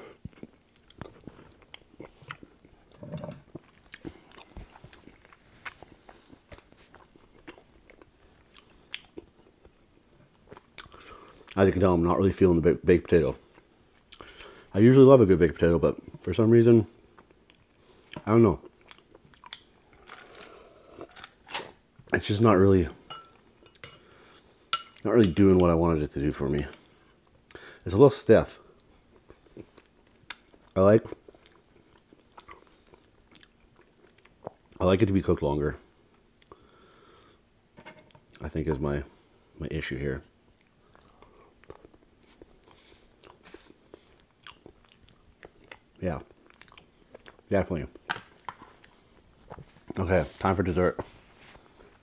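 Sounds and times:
mouth clicks and smacks: 0.2 - 2.6, 10.5 - 11.0
metal spoon clinking glass bowl: 24.8 - 25.4
chewing mouth sounds: 40.6 - 47.5.

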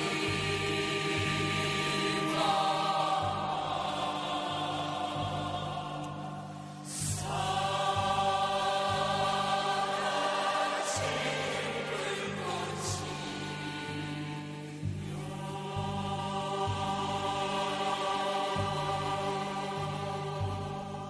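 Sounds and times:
chorus singing held chords: 0.0 - 21.0.

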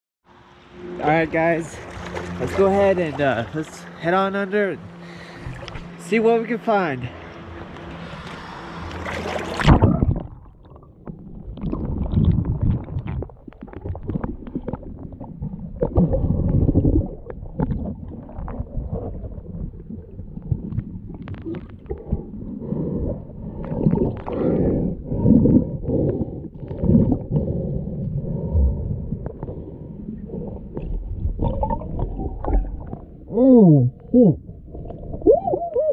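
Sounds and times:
underwater sloshing and gurgling: 1.4 - 35.9
camera splashing into water: 8.9 - 14.8.

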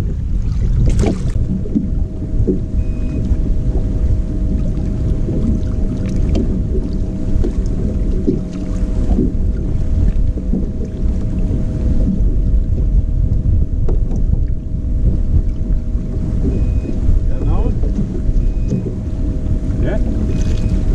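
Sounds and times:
faint steady hum: 0.0 - 20.9
water lapping against boat hull: 0.0 - 20.9
wind buffeting microphone: 0.0 - 20.9.

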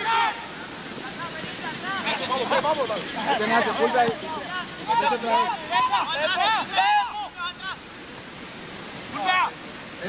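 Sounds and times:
voices shouting calls: 0.0 - 8.2.

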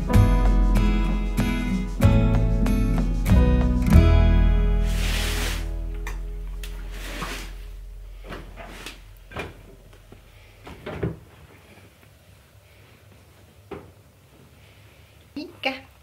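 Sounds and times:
guitar chord ringing: 0.0 - 5.0, 5.8 - 6.9
laundry knocks and rustles: 8.2 - 11.8.

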